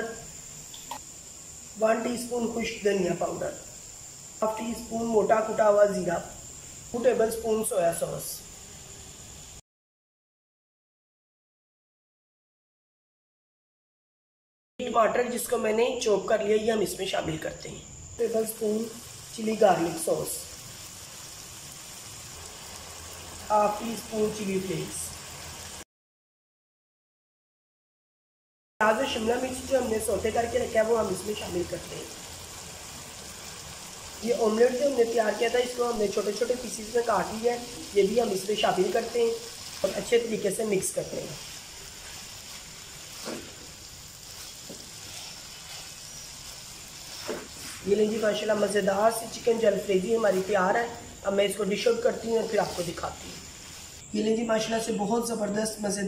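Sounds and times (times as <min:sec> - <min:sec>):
chicken sizzling in a wok: 0:00.0 - 0:07.5, 0:08.4 - 0:09.6, 0:18.1 - 0:25.9, 0:28.8 - 0:54.2
spatula scraping a pan: 0:41.3 - 0:48.2.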